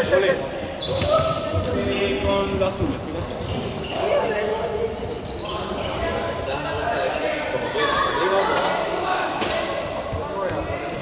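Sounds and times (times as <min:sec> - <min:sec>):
young people calling and chattering: 0:00.0 - 0:11.0.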